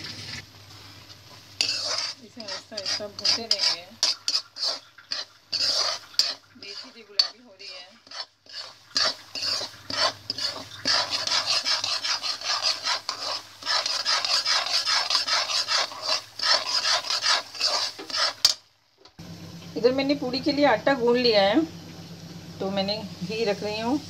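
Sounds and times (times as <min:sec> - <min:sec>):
spoon scraping a pan: 0:01.0 - 0:18.7.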